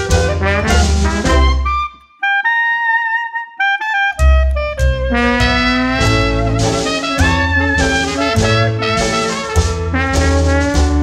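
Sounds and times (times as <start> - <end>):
steady bass beat: 0.0 - 1.8, 4.2 - 11.0
hot jazz band with horns: 0.0 - 1.9, 3.9 - 11.0
wind instrument solo: 0.0 - 11.0.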